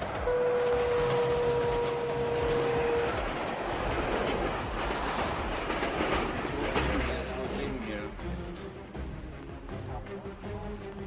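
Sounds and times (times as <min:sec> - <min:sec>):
tram horn long note: 0:00.0 - 0:03.5
tram wheels on rails: 0:00.0 - 0:11.0.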